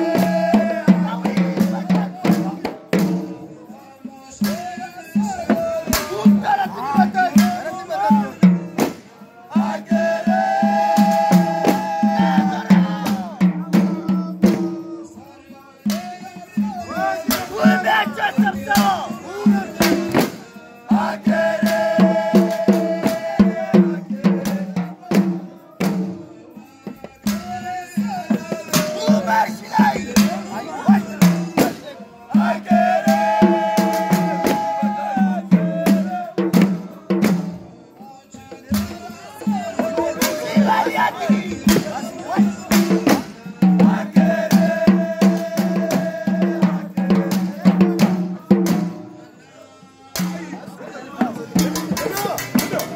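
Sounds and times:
fast drum beat: 0.0s - 3.6s, 4.4s - 15.2s, 15.8s - 37.8s, 38.4s - 49.2s, 50.2s - 52.9s
sharp percussive hits: 0.0s - 49.2s, 50.2s - 52.9s
men chanting a devotional song: 0.0s - 52.9s.

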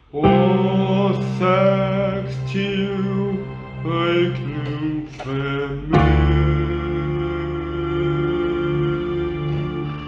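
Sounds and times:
man singing slow song: 0.0s - 10.0s
sustained low accompaniment: 0.0s - 10.0s.

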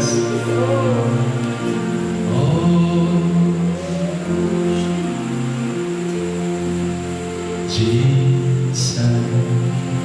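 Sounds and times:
slow worship music: 0.0s - 10.0s.

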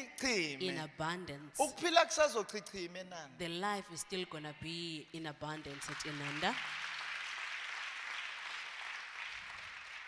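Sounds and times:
audience applauding: 5.7s - 10.0s.

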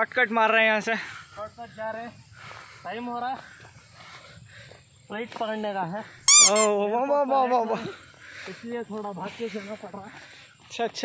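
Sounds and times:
high-pitched squeal: 6.3s - 6.8s.

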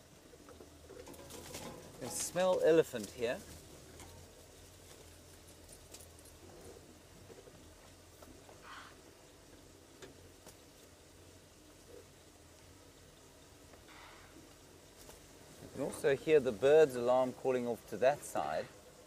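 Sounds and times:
low steady hum: 0.0s - 19.0s
distant bird alarm calls: 8.4s - 10.0s.

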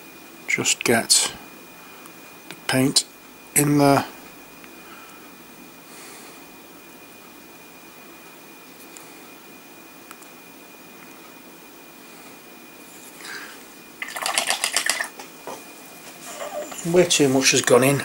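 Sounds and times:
thin high whine: 0.0s - 18.0s
rapid clicking rattles: 14.0s - 15.2s.

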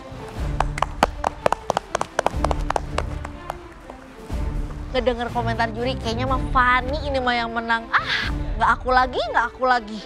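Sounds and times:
quiet background music: 0.0s - 10.0s
people clapping: 0.3s - 4.2s.

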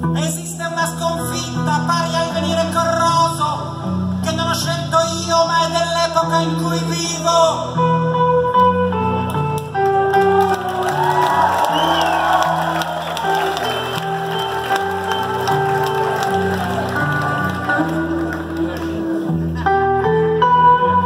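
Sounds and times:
live band with guitar and bass: 0.0s - 21.0s
crowd cheering and shouting: 10.1s - 19.1s.

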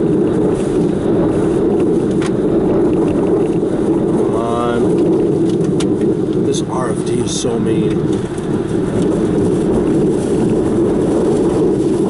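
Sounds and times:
wind and rain blasting car: 0.0s - 12.0s.

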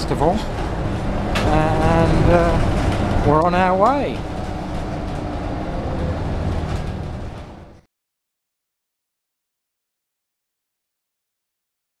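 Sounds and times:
bus engine and road noise: 0.0s - 7.9s.

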